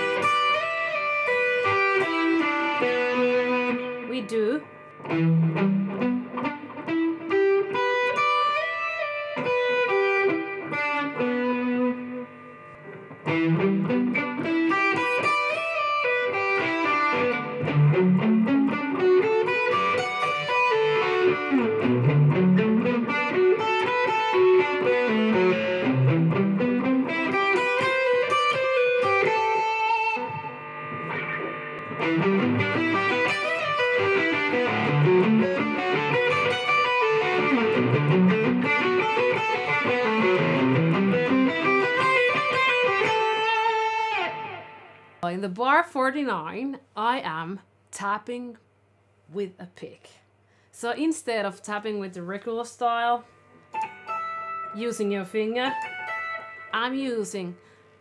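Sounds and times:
electric guitar arpeggios: 0.0 - 45.2, 53.6 - 57.8.

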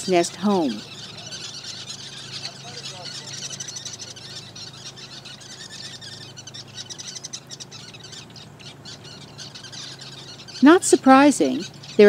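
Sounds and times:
weaver birds chattering: 0.0 - 12.0.

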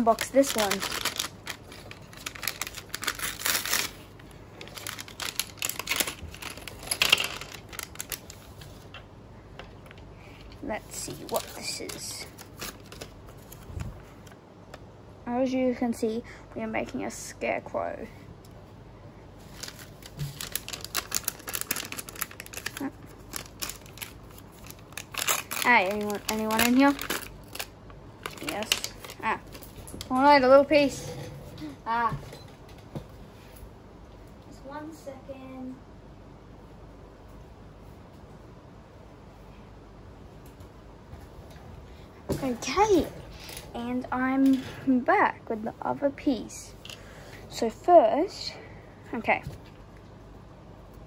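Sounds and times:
plastic packet crinkling and tearing: 0.0 - 8.8, 10.9 - 13.7, 19.4 - 30.0.

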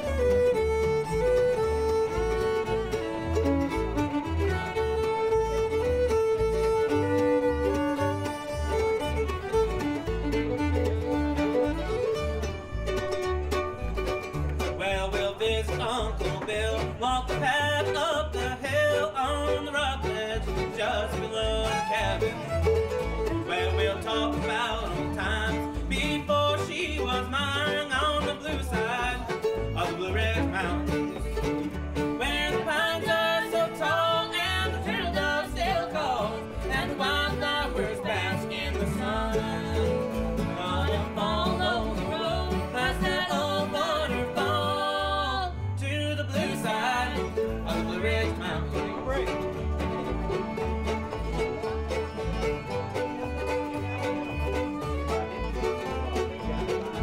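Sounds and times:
acoustic guitar: 0.0 - 57.0
fiddle playing: 0.0 - 57.0
mandolin: 0.0 - 57.0
man and woman singing together: 23.4 - 29.2, 32.2 - 49.1.

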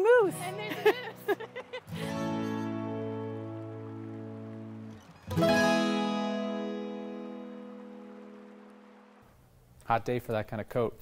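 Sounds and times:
strummed acoustic guitar chords: 0.3 - 9.2.

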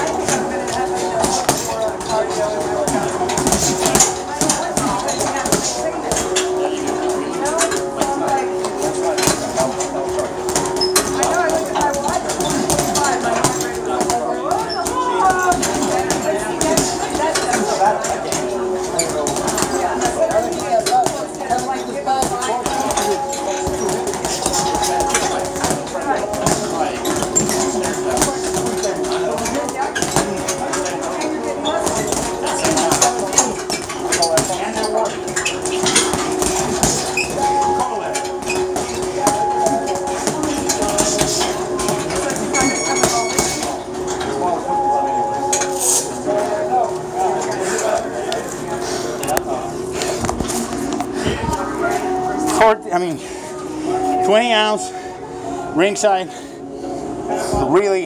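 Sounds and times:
people talking: 0.0 - 58.0
gloves punching heavy bags: 38.4 - 43.8.

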